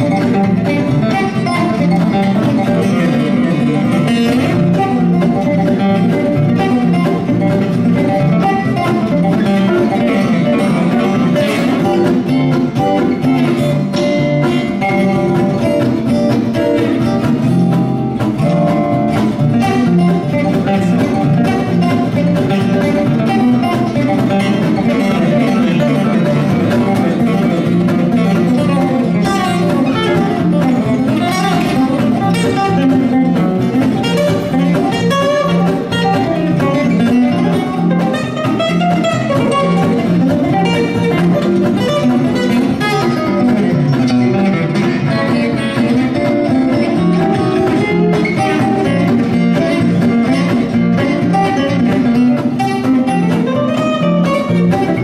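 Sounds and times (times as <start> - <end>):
acoustic guitar picking: 0.0 - 55.0
archtop guitar picking: 0.0 - 55.0.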